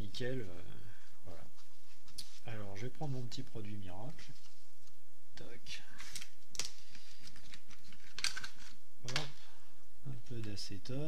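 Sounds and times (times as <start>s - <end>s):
small objects clicking and knocking: 6.6s - 9.3s.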